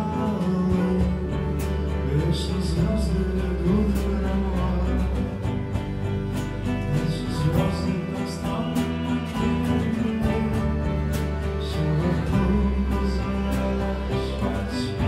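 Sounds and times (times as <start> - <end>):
folk band playing live: 0.0 - 15.0
low bass line: 0.0 - 15.0.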